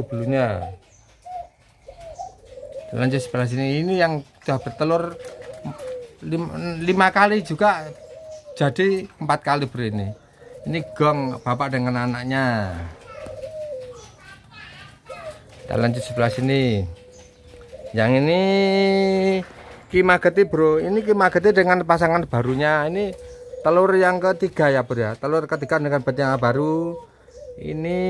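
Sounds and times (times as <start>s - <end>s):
doves cooing: 0.0s - 28.0s.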